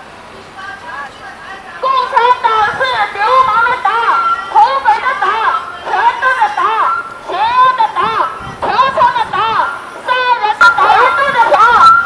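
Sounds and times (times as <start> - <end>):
high-pitched voice talking rapidly: 1.8 - 12.0.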